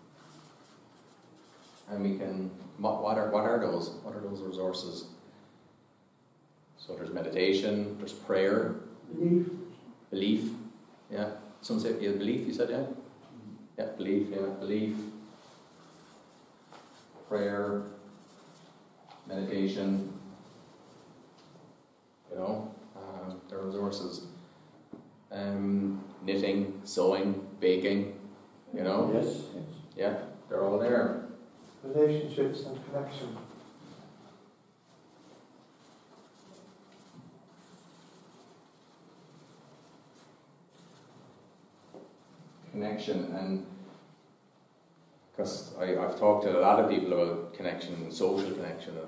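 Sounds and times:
marker pen scratching on paper: 0:00.0 - 0:01.9, 0:15.4 - 0:21.6, 0:31.5 - 0:42.8.

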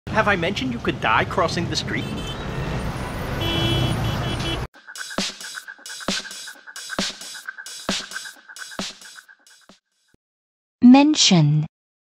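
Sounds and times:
traffic engines: 0:00.1 - 0:04.7
vehicle horn tooting: 0:01.9 - 0:04.7.

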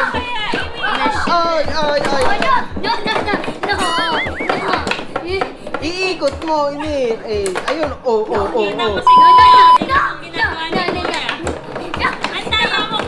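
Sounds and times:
background music with steady beat: 0:00.0 - 0:13.0
excited voices calling out: 0:03.7 - 0:04.8.

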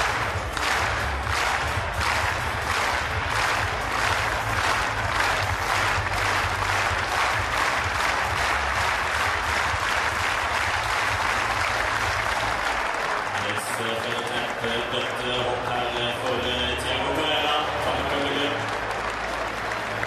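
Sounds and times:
stadium crowd applauding: 0:00.0 - 0:20.0
man speaking: 0:13.4 - 0:18.6.

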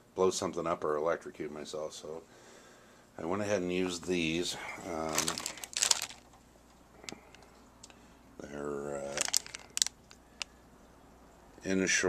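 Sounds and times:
plastic package crinkling: 0:04.8 - 0:06.4, 0:08.9 - 0:10.5.

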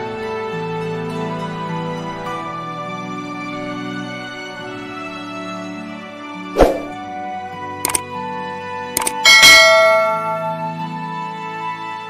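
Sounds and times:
mouse clicks: 0:09.0 - 0:09.2
bell chime: 0:09.0 - 0:10.9.

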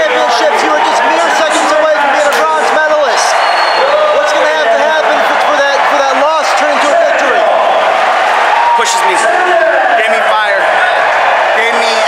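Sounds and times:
man talking: 0:00.0 - 0:07.6, 0:08.7 - 0:10.8, 0:11.5 - 0:12.0
crowd noise: 0:00.0 - 0:12.0.

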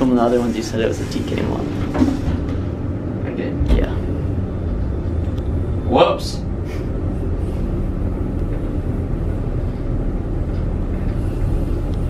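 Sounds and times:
elevator low rumble: 0:00.0 - 0:12.0.

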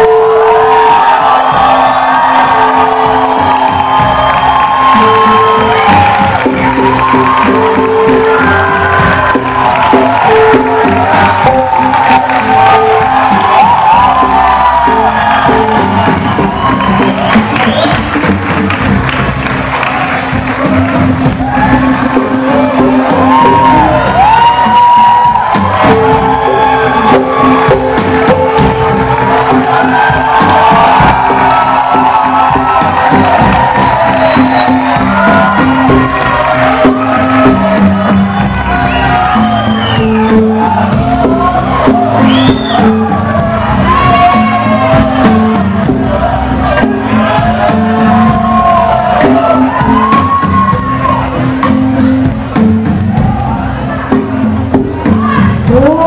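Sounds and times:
audience cheering and whooping: 0:00.0 - 0:56.0
live band playing: 0:00.0 - 0:56.0.

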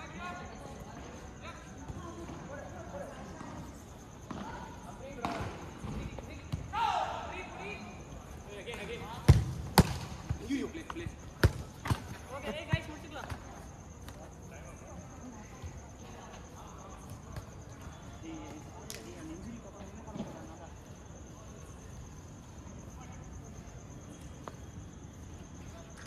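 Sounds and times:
players shouting: 0:06.6 - 0:07.9.

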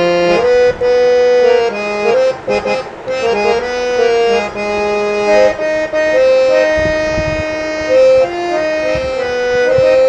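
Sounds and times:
harmonium melody: 0:00.0 - 0:10.0.

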